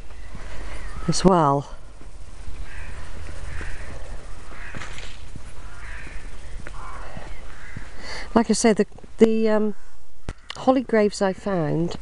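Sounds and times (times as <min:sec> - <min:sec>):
low steady rumble: 0:00.0 - 0:12.0
crow cawing: 0:02.6 - 0:08.3.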